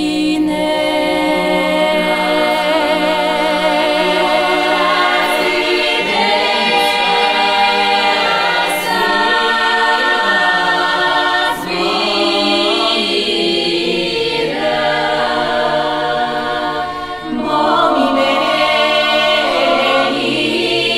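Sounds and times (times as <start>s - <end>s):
women's choir singing a cappella: 0.0s - 20.9s.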